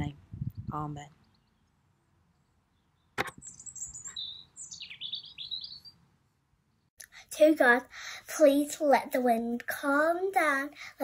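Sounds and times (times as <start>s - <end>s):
songbird singing: 0.6s - 6.9s
sharp click: 3.2s - 3.4s.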